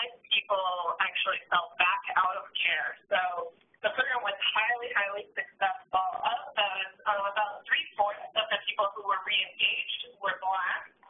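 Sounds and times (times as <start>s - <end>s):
person talking over phone line: 0.0s - 11.0s.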